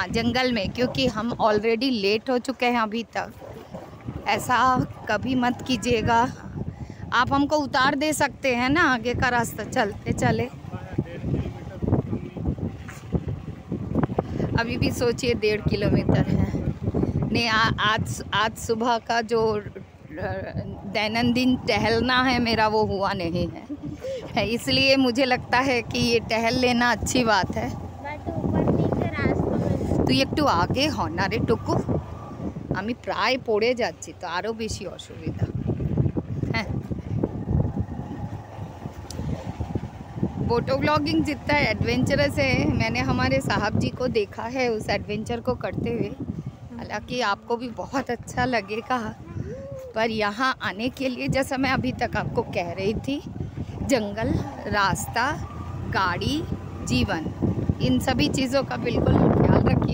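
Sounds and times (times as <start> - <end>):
wind buffeting microphone: 0.0 - 59.9
motorcycle engine: 19.6 - 33.1, 51.8 - 59.9.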